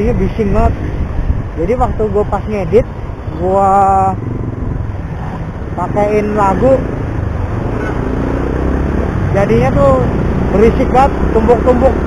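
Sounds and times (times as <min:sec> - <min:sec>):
wind and road noise: 0:00.0 - 0:12.0.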